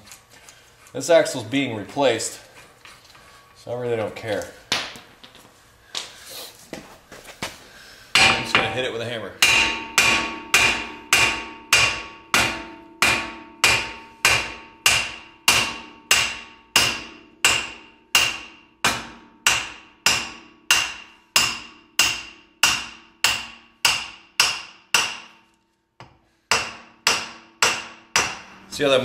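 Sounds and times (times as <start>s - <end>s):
hammer clanging on steel shaft: 8.2s - 25.4s, 26.5s - 29.0s.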